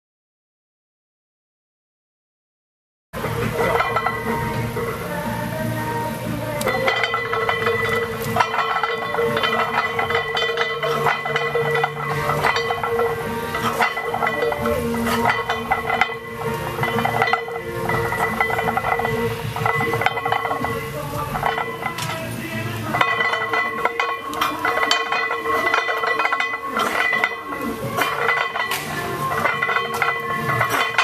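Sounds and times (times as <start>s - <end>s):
background music: 3.2s - 31.0s
weight plates clinking on barbell: 3.3s - 4.9s, 6.6s - 31.0s.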